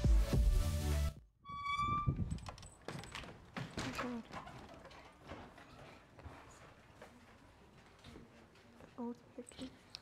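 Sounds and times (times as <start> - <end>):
door hinge squeaking: 1.5 - 2.7
footsteps on wooden floor: 2.9 - 9.1.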